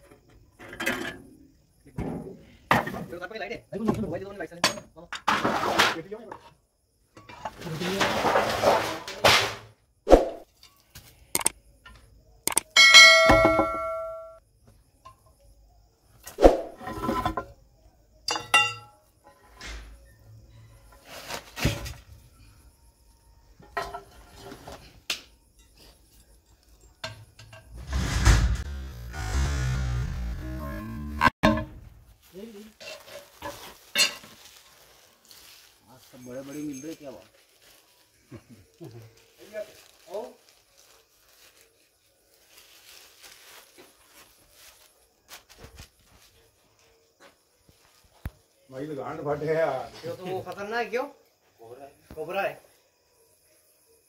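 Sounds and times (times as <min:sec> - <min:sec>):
ringing metal clang: 0:12.6 - 0:14.4
rustling scrapes on plastic and straw: 0:32.0 - 0:46.4.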